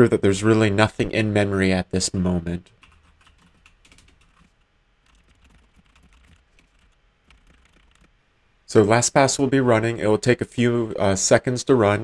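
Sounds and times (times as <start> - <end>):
faint typing on computer keyboard: 2.6 - 8.2.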